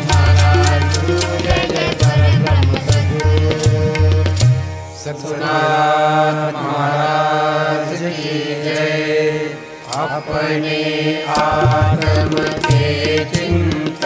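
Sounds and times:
long held melodic chant: 0.0s - 4.2s, 4.9s - 14.0s.

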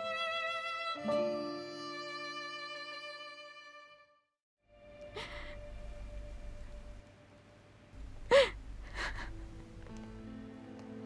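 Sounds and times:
woman sobbing: 5.1s - 5.8s, 8.2s - 9.6s.

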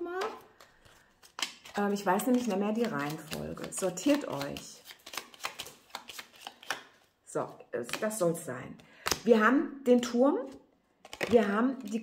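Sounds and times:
cards being shuffled: 0.2s - 8.2s, 8.8s - 9.3s, 10.4s - 12.0s.

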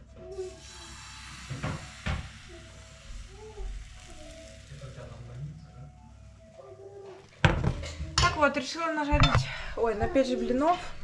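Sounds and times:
batter sizzling in frying pan: 0.4s - 5.5s.

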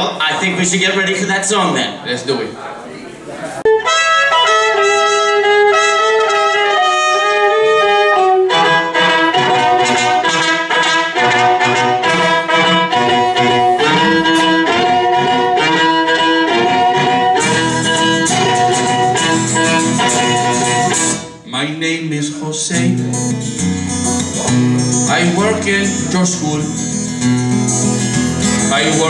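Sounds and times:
violin: 3.6s - 21.3s
trumpet: 3.6s - 21.4s
acoustic guitar strumming: 3.7s - 29.0s.

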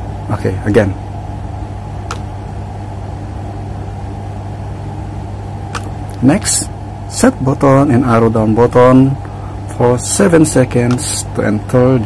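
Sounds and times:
low mains hum: 0.0s - 12.0s
short clicks: 2.0s - 2.3s, 5.7s - 6.2s, 10.8s - 11.1s.

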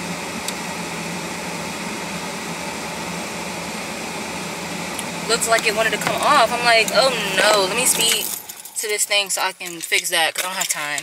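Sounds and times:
fan hiss with low hum: 0.0s - 11.0s.

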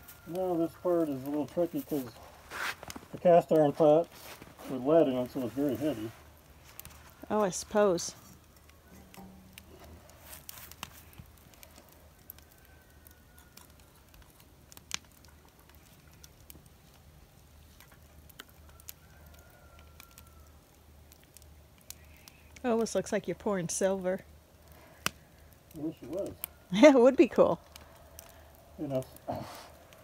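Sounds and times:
low steady hum: 0.0s - 18.7s
faint clicks and crackles: 0.1s - 30.0s.

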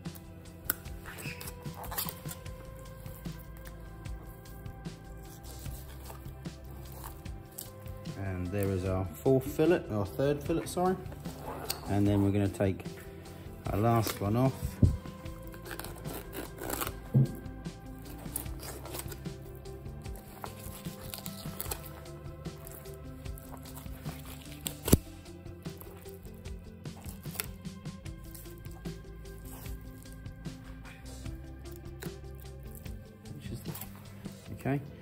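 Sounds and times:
background music with held notes: 0.0s - 35.0s
knife scraping over fish bones: 0.1s - 8.0s, 13.8s - 34.4s.

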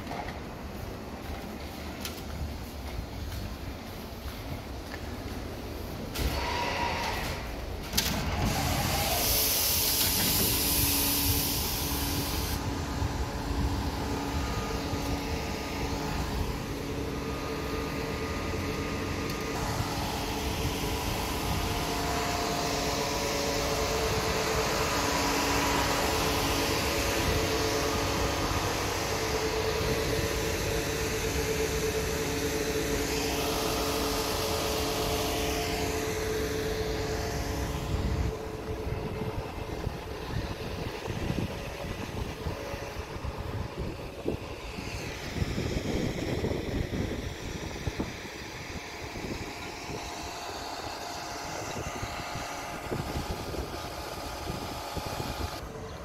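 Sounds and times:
traffic noise: 0.0s - 46.1s
large vehicle engine hum: 0.0s - 56.0s
high rising and falling whines: 4.2s - 56.0s.

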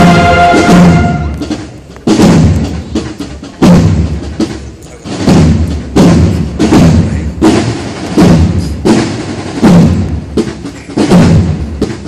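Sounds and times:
band drums beating a march: 0.0s - 12.0s.

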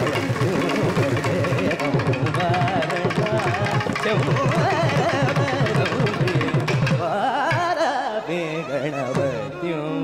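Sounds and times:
hand drums playing: 0.0s - 8.0s, 9.0s - 9.6s.

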